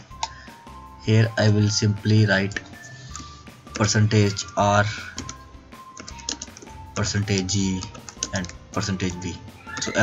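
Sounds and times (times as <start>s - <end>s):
faint background music: 0.0s - 10.0s
keyboard typing: 5.0s - 6.8s, 7.7s - 8.6s.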